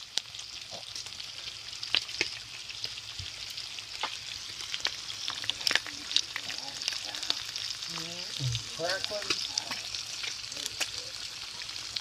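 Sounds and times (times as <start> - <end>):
bacon sizzling with pops: 0.0 - 12.0.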